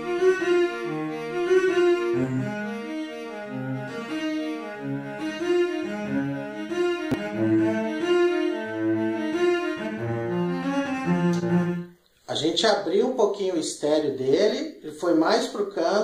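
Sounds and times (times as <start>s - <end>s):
cello melody with reverb: 0.0s - 12.0s.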